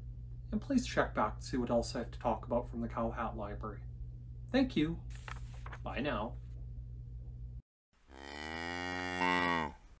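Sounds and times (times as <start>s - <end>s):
cow mooing: 8.1s - 9.9s.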